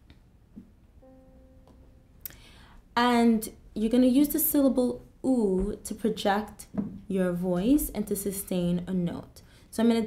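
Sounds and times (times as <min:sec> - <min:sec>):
soft piano note: 0:01.0 - 0:02.7.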